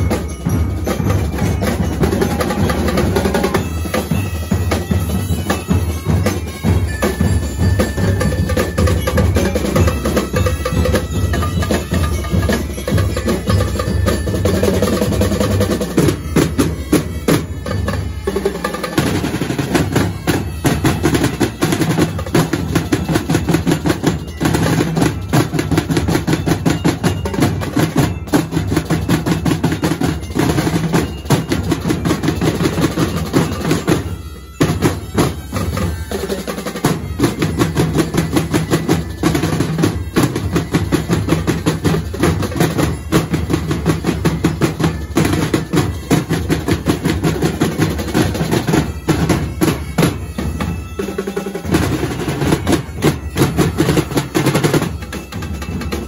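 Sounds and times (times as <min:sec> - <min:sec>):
snare and bass drumline: 0:00.0 - 0:56.0.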